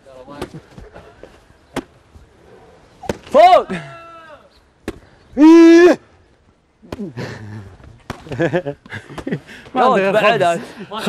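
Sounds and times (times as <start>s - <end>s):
man shouting: 3.3s - 4.5s, 5.4s - 6.1s.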